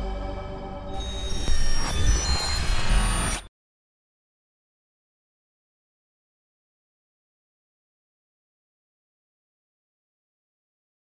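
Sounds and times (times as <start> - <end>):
high whining tones: 0.9 - 3.5.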